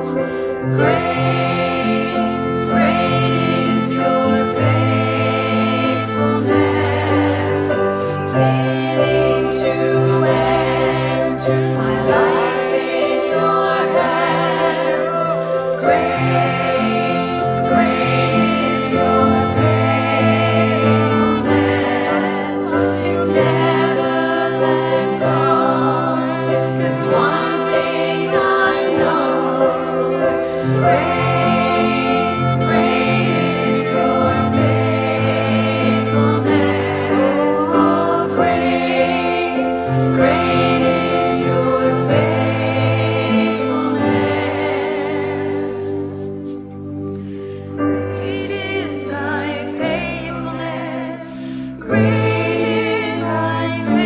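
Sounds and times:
group of voices singing: 0.0s - 54.0s
instrumental accompaniment: 0.0s - 54.0s
saxophone playing: 1.0s - 10.8s, 16.0s - 25.6s.

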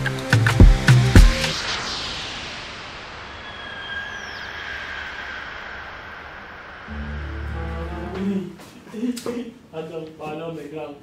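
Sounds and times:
steady rushing noise: 0.7s - 8.6s
faint high whistling tones: 1.6s - 7.7s.

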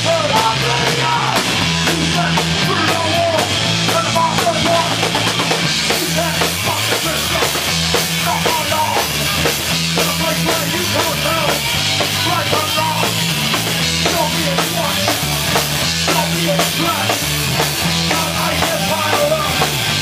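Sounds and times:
bass guitar: 0.0s - 20.0s
distorted electric guitar: 0.0s - 20.0s
pounding drum kit: 0.0s - 20.0s
singer's vocals: 0.0s - 20.0s.

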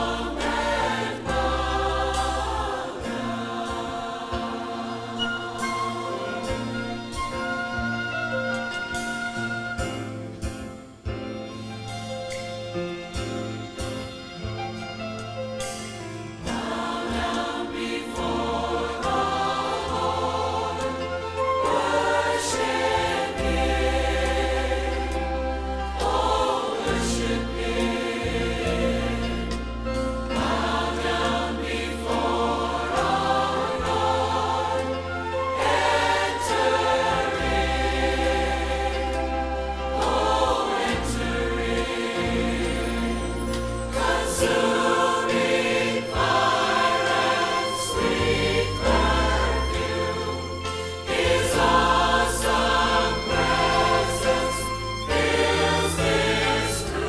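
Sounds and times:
choir singing: 0.0s - 10.7s, 16.3s - 57.0s
instrumental accompaniment: 0.0s - 57.0s.

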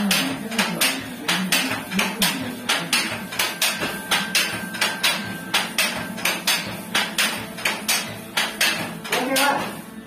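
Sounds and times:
loom mechanism metallic knocks: 0.0s - 9.8s.

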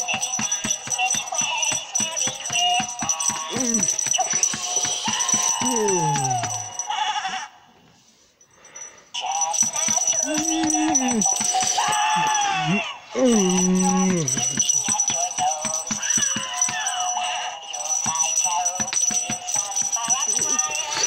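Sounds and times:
rattling beat: 0.0s - 6.8s, 9.5s - 17.1s, 17.7s - 21.0s
electronic toy song: 9.2s - 21.0s.

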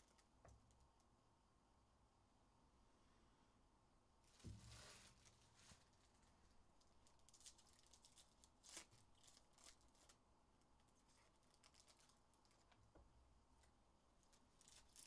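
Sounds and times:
soft thump: 4.4s - 4.9s
foil wrappers tearing and crinkling: 6.8s - 10.2s, 11.0s - 12.7s, 14.5s - 15.0s.

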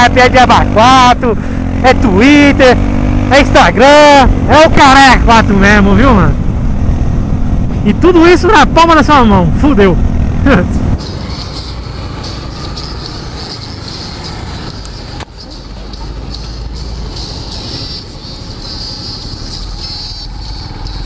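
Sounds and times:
motorcycle engine and road rumble: 0.0s - 21.0s
high-pitched hiss: 11.0s - 21.0s.

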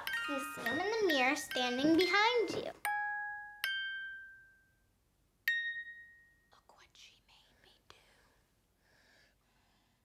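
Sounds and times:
music box notes: 0.0s - 4.8s, 5.4s - 6.6s
breathy whispering: 6.5s - 8.5s.

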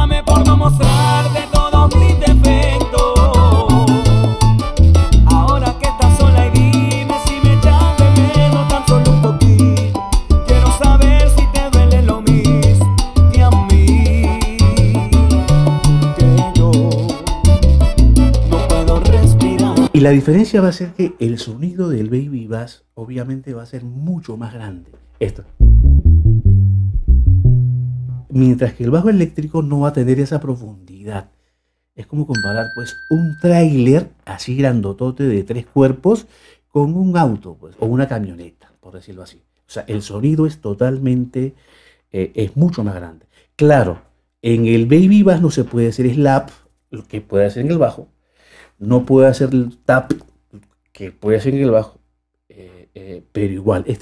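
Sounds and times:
electric upright bass plucked: 0.0s - 20.0s, 25.5s - 28.4s
salsa band recording: 0.0s - 21.5s.

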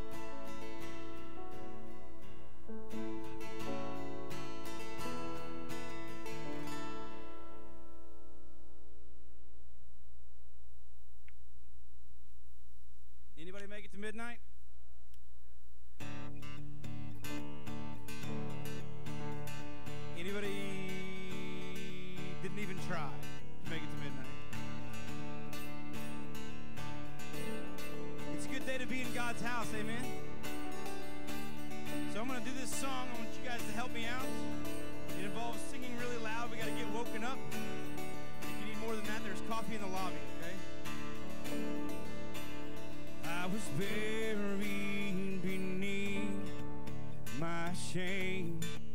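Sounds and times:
acoustic guitar strumming: 0.0s - 9.0s, 16.0s - 48.9s.

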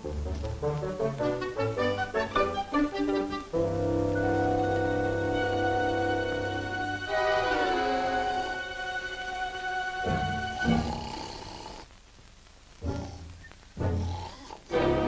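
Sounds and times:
orchestral score with sustained chords: 1.6s - 11.0s, 14.7s - 15.0s.

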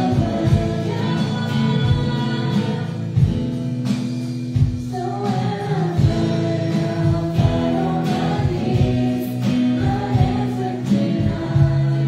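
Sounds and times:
voices singing along: 0.0s - 3.2s, 4.8s - 12.0s
acoustic guitar: 0.0s - 12.0s
held chords: 0.0s - 12.0s
low drum beat: 6.0s - 12.0s.

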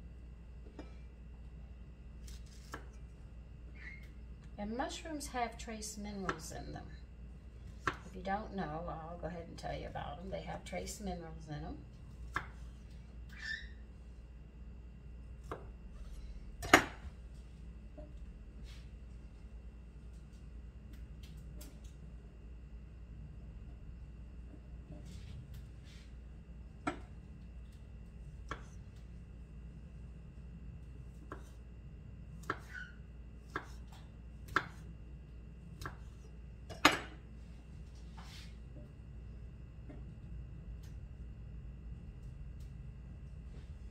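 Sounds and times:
knife chopping on wooden board: 31.3s - 31.6s, 32.4s - 32.8s, 33.5s - 34.9s.

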